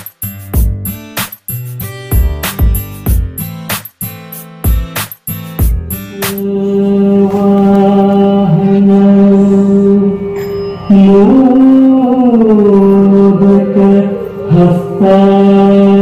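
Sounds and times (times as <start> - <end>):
person singing chant-like melody: 6.0 - 16.0.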